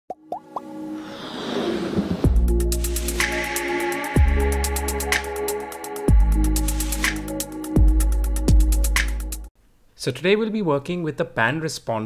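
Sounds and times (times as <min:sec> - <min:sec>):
quick rising pops: 0:00.6 - 0:02.6
whoosh: 0:01.0 - 0:02.6.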